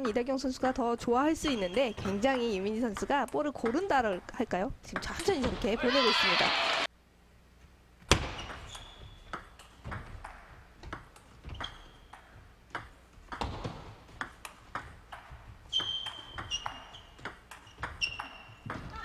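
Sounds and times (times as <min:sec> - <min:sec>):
shoes squeaking on floor: 0:01.4 - 0:02.7, 0:08.1 - 0:10.0, 0:11.3 - 0:12.6, 0:15.2 - 0:19.0.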